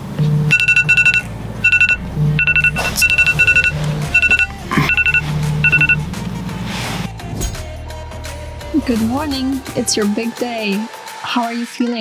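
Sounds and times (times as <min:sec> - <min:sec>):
rapid electronic alarm beeps: 0:00.5 - 0:06.0.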